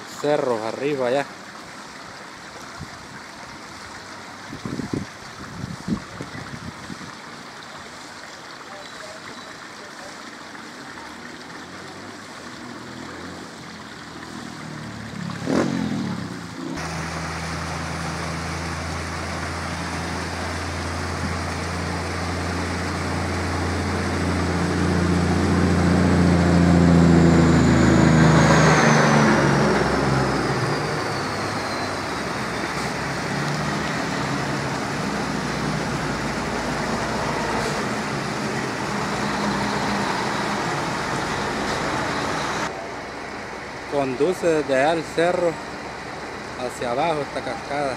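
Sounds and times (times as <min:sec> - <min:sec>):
creek water spilling over weir: 0:00.0 - 0:47.9
motor vehicle engine running: 0:14.2 - 0:43.9.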